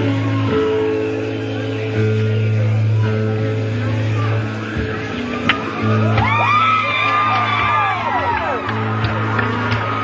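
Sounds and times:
audience whooping and screaming: 0:05.8 - 0:10.0.

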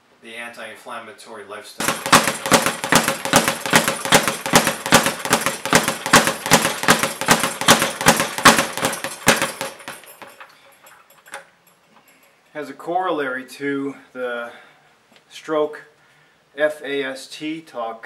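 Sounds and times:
speed bag being punched: 0:01.8 - 0:10.5.

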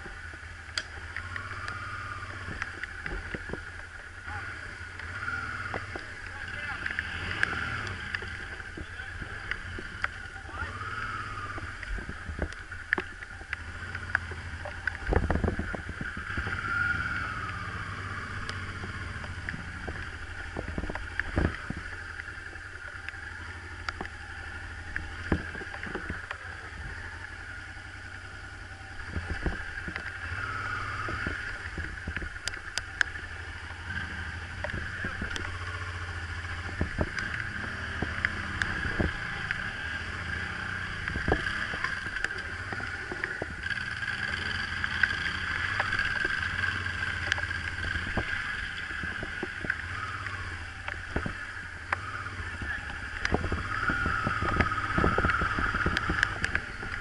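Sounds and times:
motorcycle idling: 0:00.0 - 0:57.0.

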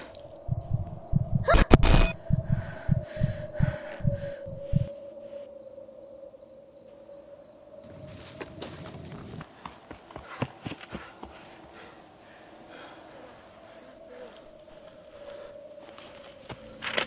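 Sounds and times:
sustained drone tone: 0:00.0 - 0:09.4
rapid low thumps: 0:00.5 - 0:04.9.

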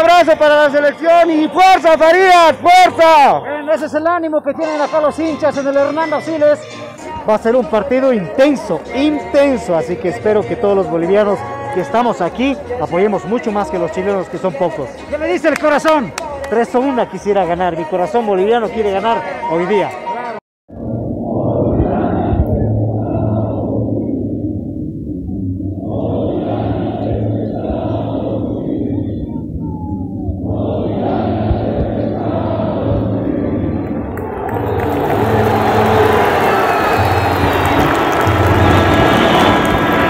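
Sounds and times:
stadium crowd singing and chanting: 0:04.9 - 0:20.4, 0:21.2 - 0:24.2, 0:25.8 - 0:40.0.

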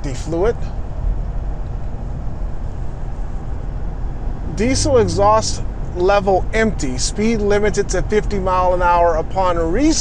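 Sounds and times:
road and engine rumble inside truck: 0:00.0 - 0:10.0.

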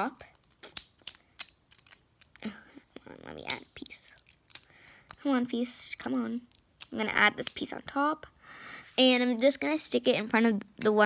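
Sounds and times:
plastic bricks clicking together: 0:00.2 - 0:02.5, 0:03.4 - 0:05.2, 0:06.3 - 0:07.7.

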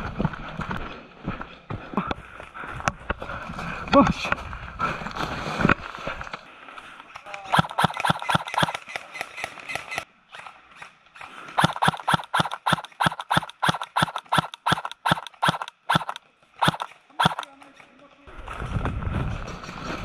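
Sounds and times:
airsoft gun firing: 0:07.5 - 0:10.0, 0:11.6 - 0:17.5.

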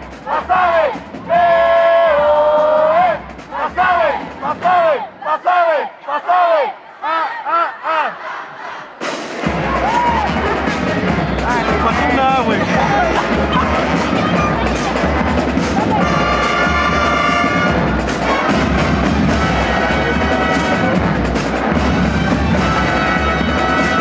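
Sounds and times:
marching band playing with drums: 0:00.0 - 0:05.0, 0:09.0 - 0:24.0
people shouting a chant in unison: 0:00.0 - 0:20.9.

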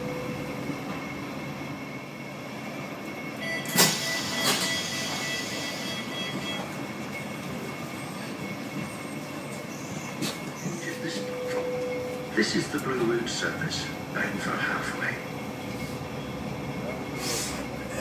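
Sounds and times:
tram rumbling: 0:00.0 - 0:18.0.

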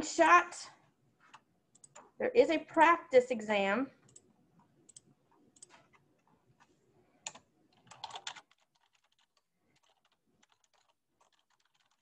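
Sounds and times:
typing on computer keyboard: 0:01.3 - 0:02.1, 0:04.0 - 0:06.0, 0:07.2 - 0:12.0.

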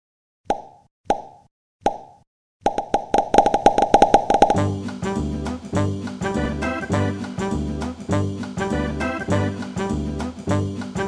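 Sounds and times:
popping sound effects: 0:00.5 - 0:04.7.

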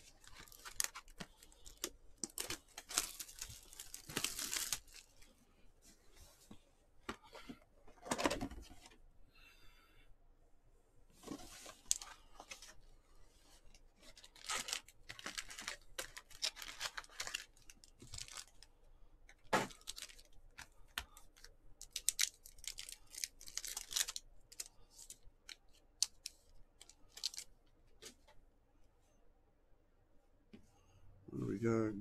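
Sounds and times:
packaging tearing and crinkling: 0:00.0 - 0:05.1, 0:14.0 - 0:18.6, 0:19.5 - 0:20.3, 0:21.4 - 0:25.2.

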